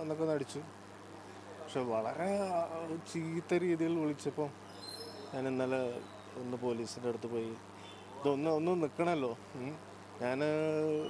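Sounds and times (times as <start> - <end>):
man speaking: 1.5 - 4.6, 5.2 - 11.0.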